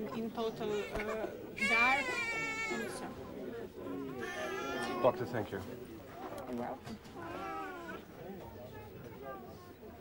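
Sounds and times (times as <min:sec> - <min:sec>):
infant crying: 0:04.2 - 0:05.2, 0:07.2 - 0:08.0.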